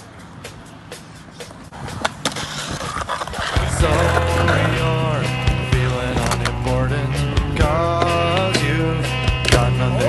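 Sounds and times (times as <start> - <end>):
skateboard wheels rolling on concrete: 0.0 - 10.0
skateboard grinding on ledge: 1.7 - 6.8
skateboard clacks: 5.9 - 6.7.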